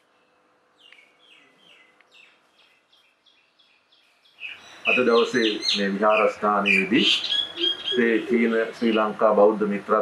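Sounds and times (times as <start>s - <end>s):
small bird chirping: 0.0s - 9.1s
man speaking: 4.9s - 7.3s, 7.9s - 10.0s.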